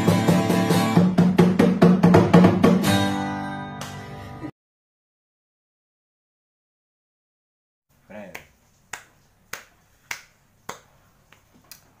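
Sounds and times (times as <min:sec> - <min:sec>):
person making sharp clicks: 0:08.1 - 0:11.9.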